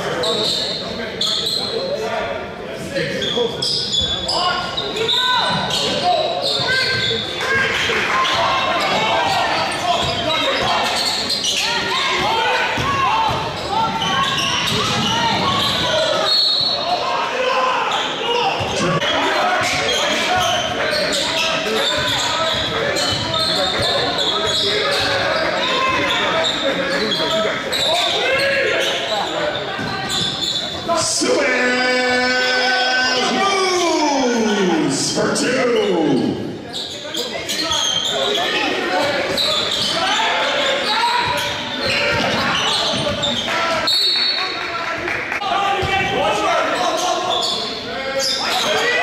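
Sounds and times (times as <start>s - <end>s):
voices calling out: 3.6s - 44.6s.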